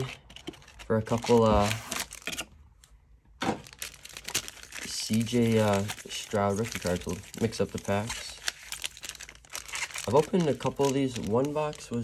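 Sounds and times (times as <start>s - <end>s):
card packs clicking and rustling: 0.0s - 2.5s, 3.4s - 12.0s
foil pack crinkle: 0.6s - 2.3s, 3.6s - 12.0s.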